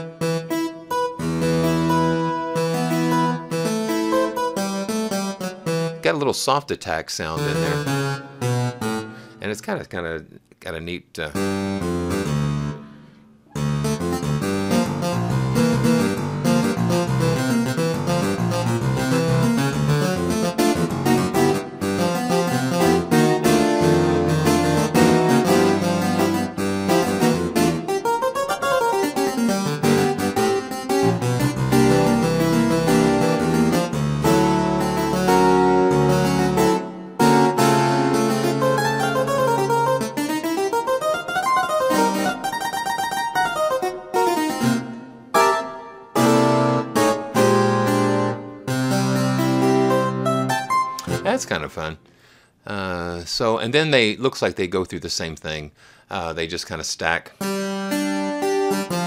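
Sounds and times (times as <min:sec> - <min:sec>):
harpsichord playing: 0:00.0 - 0:06.6, 0:07.2 - 0:09.4, 0:11.4 - 0:51.9, 0:57.4 - 0:59.0.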